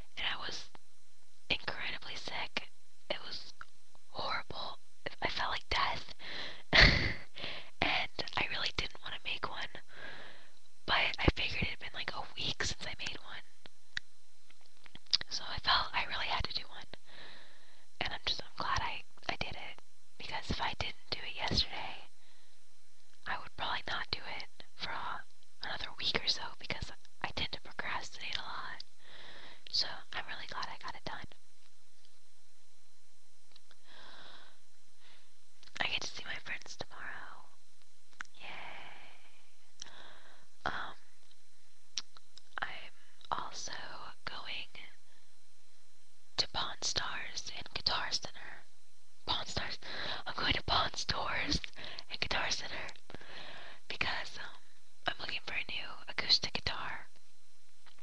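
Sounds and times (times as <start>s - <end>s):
person whispering: 0.1s - 0.7s, 1.5s - 3.5s, 4.1s - 6.2s, 7.8s - 9.9s, 10.9s - 13.5s, 15.2s - 17.0s, 18.0s - 22.1s, 23.3s - 28.8s, 29.7s - 31.3s, 35.7s - 37.6s, 38.3s - 40.0s, 40.6s - 41.0s, 42.6s - 45.0s, 46.4s - 48.6s, 49.3s - 53.0s, 53.9s - 57.1s.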